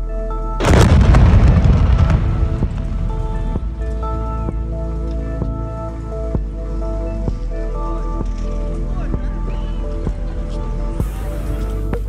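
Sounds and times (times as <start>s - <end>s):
background music with beat: 0.0s - 12.0s
distant explosion rumble: 0.6s - 5.7s.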